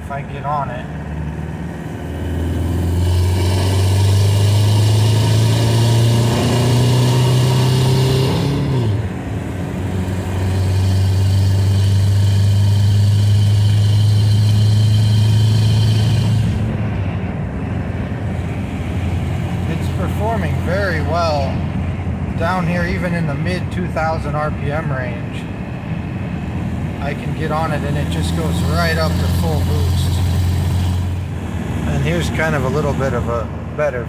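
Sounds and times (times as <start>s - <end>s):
diesel engine accelerating hard: 0.0s - 34.0s.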